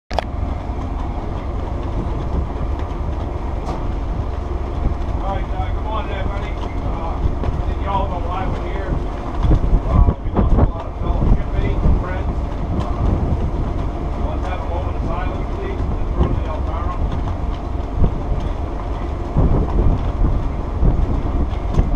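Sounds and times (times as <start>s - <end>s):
wind buffeting microphone: 0.1s - 21.9s.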